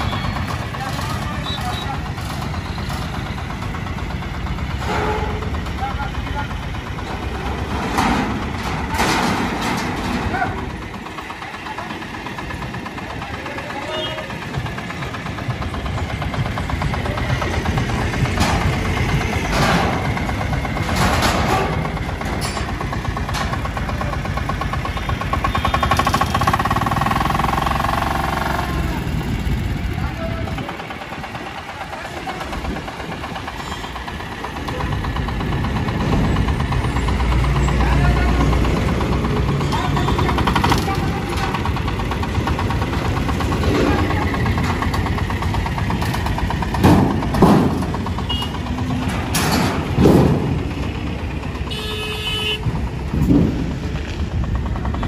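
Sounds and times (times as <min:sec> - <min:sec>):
small truck engine running: 0:00.0 - 0:55.0.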